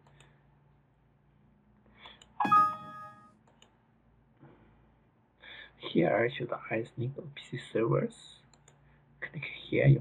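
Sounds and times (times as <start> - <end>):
computer warning chime: 2.4 - 3.3.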